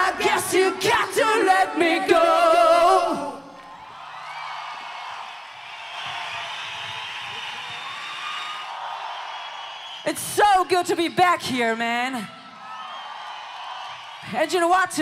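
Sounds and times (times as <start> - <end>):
crowd cheering and whooping: 3.4 - 11.5, 12.2 - 14.5.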